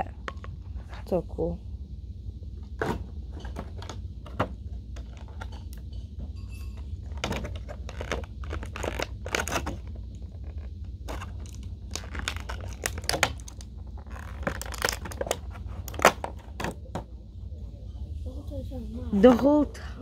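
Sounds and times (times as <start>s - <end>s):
plastic packaging crinkling: 7.5s - 16.3s.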